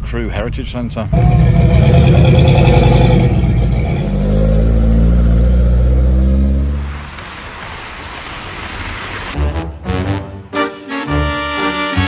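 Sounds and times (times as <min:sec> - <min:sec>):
car engine rumbling: 0:01.0 - 0:07.6.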